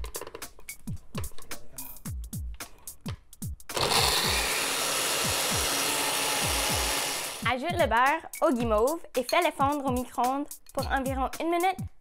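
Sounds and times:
electronic background music: 0.0s - 11.9s
blender grinding cookies: 3.7s - 7.5s.

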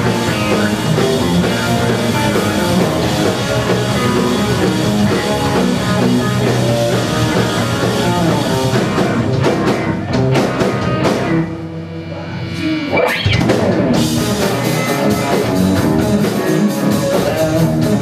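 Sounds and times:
live instrumental rock: 0.0s - 18.0s.

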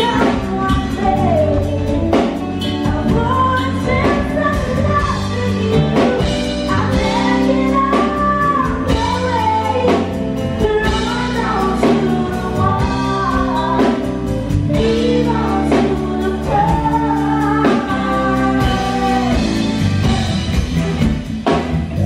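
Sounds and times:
bass guitar: 0.0s - 22.0s
drum kit: 0.0s - 22.0s
electric guitar: 0.0s - 22.0s
keyboard: 0.0s - 22.0s
woman and man singing: 14.7s - 20.3s.

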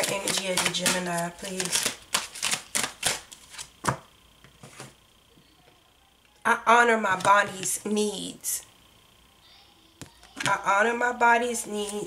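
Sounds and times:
cards being shuffled: 0.0s - 4.0s.

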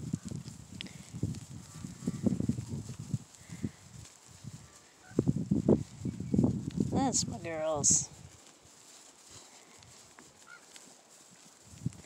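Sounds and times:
sheep cropping grass: 0.0s - 12.0s.

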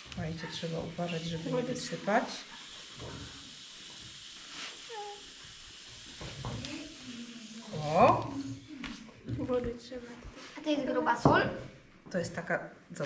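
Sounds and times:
salt grains pouring into glass: 0.9s - 8.7s.

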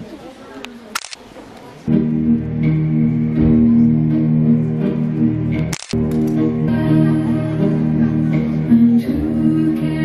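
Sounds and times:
low murmuring voices: 0.0s - 10.0s
camera shutter clicking: 1.0s - 1.2s, 5.7s - 6.0s
music with bass guitar: 1.9s - 10.0s.

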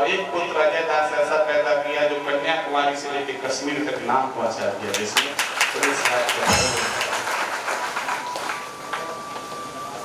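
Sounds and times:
audience applauding: 4.9s - 9.3s.

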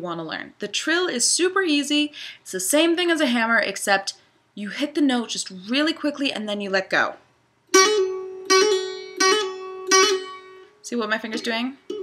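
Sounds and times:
mandolin note picked with trill: 7.7s - 12.0s.

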